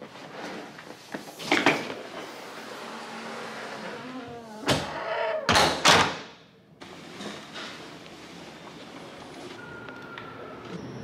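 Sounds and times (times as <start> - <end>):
door creaking: 2.8 - 6.1.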